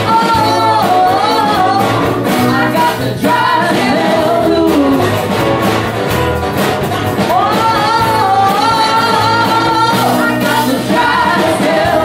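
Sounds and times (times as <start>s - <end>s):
woman singing: 0.0s - 5.2s, 7.2s - 12.0s
electric bass: 0.0s - 12.0s
guitar: 0.0s - 12.0s.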